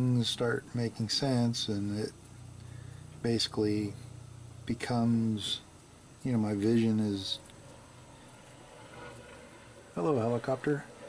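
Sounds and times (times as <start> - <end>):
distant helicopter drone: 6.5 - 11.0.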